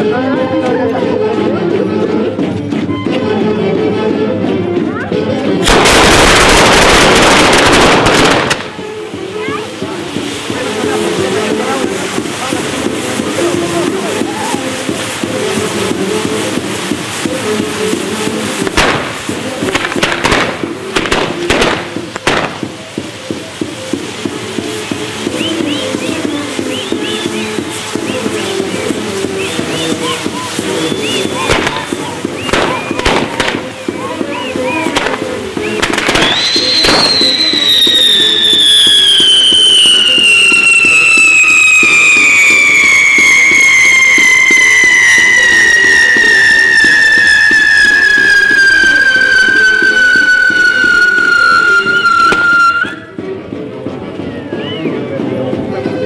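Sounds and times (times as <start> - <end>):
music playing: 0.0 - 56.0
fireworks cracking and popping: 4.9 - 53.3
whistling firework: 5.6 - 53.2.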